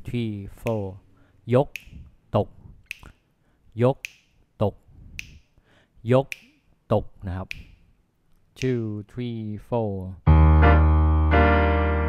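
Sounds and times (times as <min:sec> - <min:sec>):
person speaking rhythm syllables: 0:00.0 - 0:07.9, 0:08.5 - 0:11.6
finger snaps: 0:01.6 - 0:02.2, 0:02.8 - 0:03.2, 0:04.0 - 0:04.4, 0:05.1 - 0:05.6, 0:06.2 - 0:06.8, 0:07.4 - 0:08.9.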